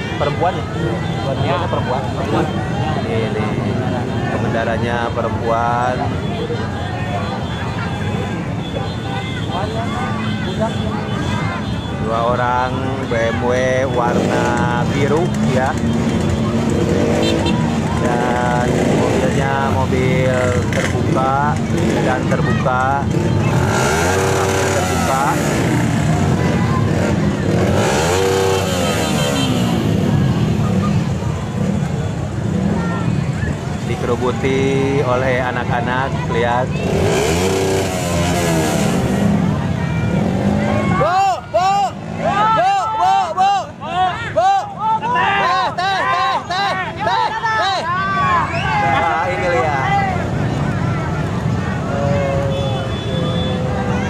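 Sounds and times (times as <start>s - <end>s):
crowd voices calling out: 0.0s - 54.0s
motorcycle and car engines droning: 0.0s - 54.0s.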